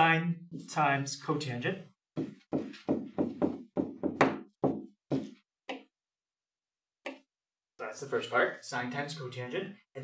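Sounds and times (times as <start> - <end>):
stylus knocking on writing surface: 2.1 - 5.9.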